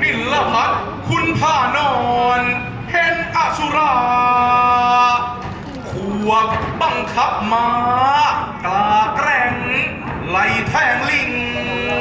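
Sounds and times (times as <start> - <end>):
man chanting verse: 0.0 - 12.0.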